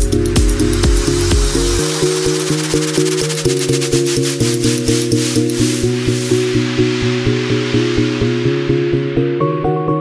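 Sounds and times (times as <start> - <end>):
electronic dance music: 0.0 - 8.6.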